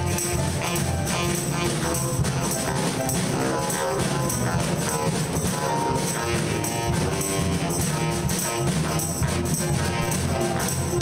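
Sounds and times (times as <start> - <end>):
drum kit: 0.0 - 11.0
saxophones: 0.0 - 11.0.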